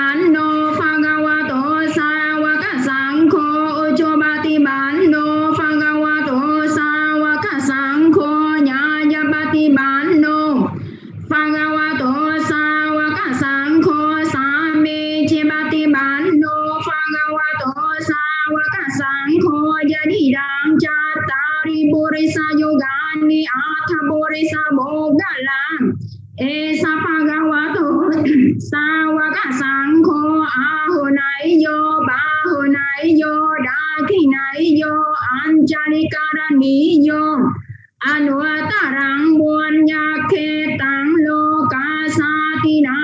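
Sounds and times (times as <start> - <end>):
person singing in high voice: 0.0 - 43.0.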